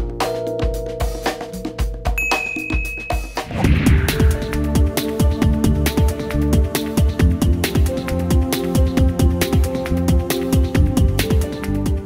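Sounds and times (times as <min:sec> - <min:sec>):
intro music with steady beat: 0:00.0 - 0:12.0
bright high ding: 0:02.2 - 0:03.5.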